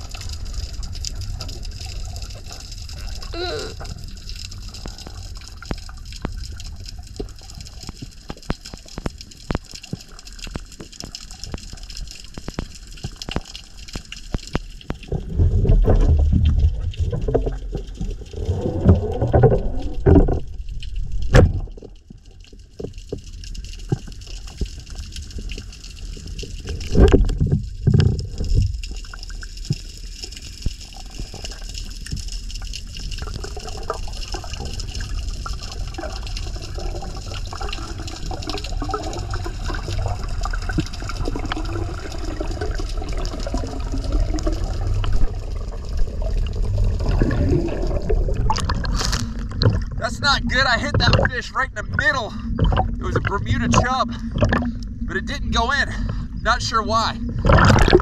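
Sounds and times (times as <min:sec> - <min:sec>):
bubbling gurgles: 0:00.0 - 0:58.0
underwater low rumble: 0:00.0 - 0:58.0.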